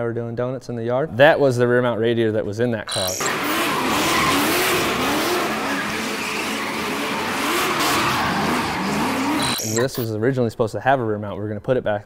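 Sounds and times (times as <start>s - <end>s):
car engine revving: 2.9s - 10.0s
tyres screeching: 2.9s - 10.0s.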